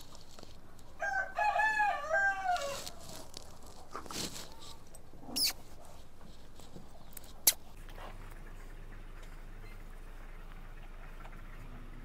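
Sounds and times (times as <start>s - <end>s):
rooster crowing: 1.0s - 3.0s.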